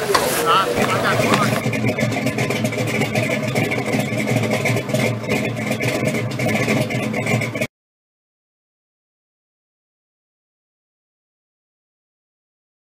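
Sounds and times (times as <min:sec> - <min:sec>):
engine running steadily: 0:00.0 - 0:07.7.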